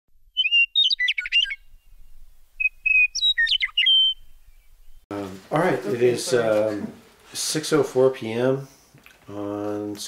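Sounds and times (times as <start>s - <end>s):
songbird whistling and warbling: 0.3s - 5.0s.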